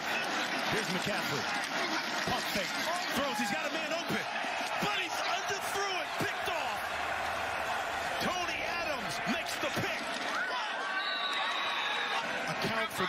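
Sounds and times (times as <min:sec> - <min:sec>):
players shouting: 0:00.0 - 0:13.0.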